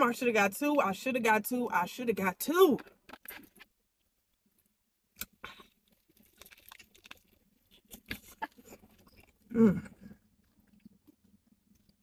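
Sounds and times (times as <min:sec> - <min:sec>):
chewing crunches: 0:03.2 - 0:12.0.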